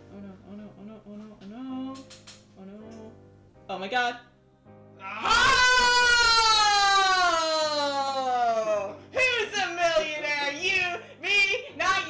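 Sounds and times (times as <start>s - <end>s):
woman wailing: 5.0s - 8.9s.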